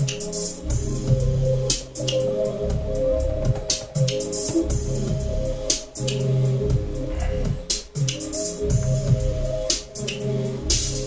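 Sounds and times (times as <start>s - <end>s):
held synth chords: 0.0s - 11.0s
low synth bass line: 0.6s - 11.0s.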